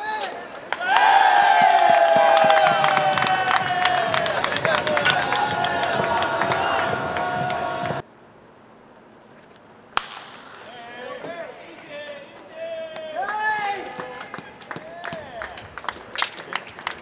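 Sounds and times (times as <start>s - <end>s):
ballpark crowd noise: 0.0s - 8.0s, 10.0s - 17.0s
people calling out: 0.0s - 8.0s
bat hitting baseball: 10.0s - 10.8s.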